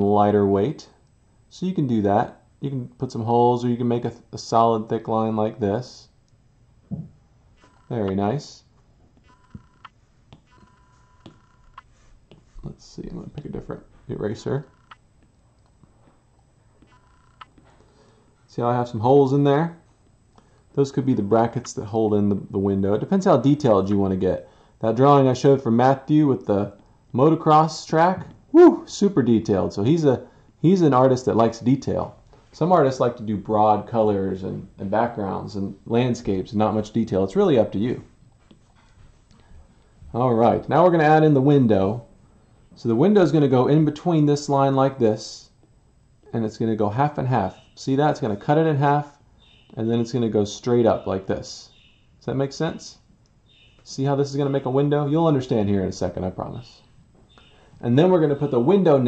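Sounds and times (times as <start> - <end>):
stylus tapping glass screen: 9.2 - 12.5.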